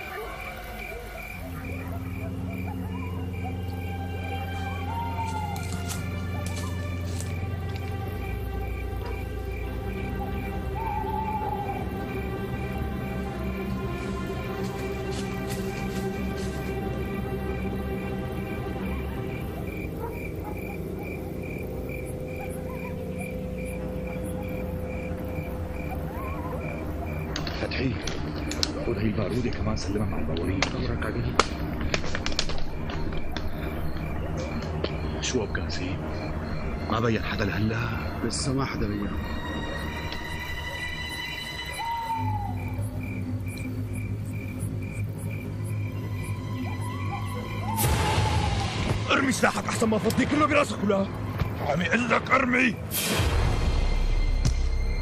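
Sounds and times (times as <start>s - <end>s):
crickets chirping: 0.0s - 55.0s
low dramatic background music: 0.0s - 55.0s.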